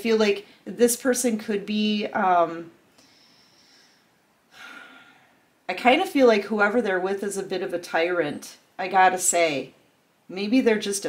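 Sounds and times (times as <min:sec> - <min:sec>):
woman's intake of breath: 0:02.9 - 0:05.4.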